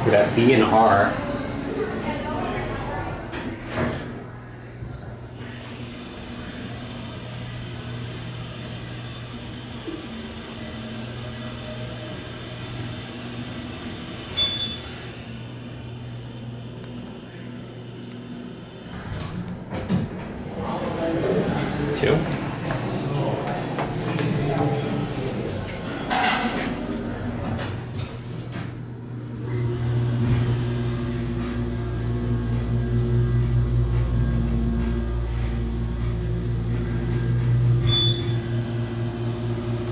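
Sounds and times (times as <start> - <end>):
elevator hum with high whine: 0.0 - 39.9
elevator doors sliding: 5.3 - 17.2, 17.8 - 39.9
brief high beep: 14.4 - 14.8, 37.8 - 38.4.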